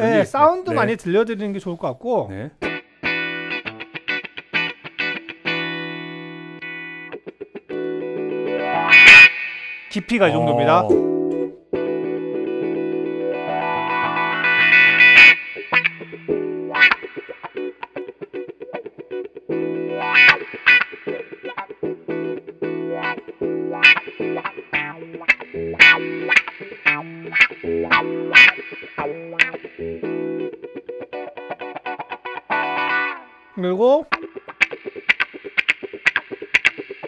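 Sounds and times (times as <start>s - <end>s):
electric guitar with wah pedal: 2.6s - 37.0s.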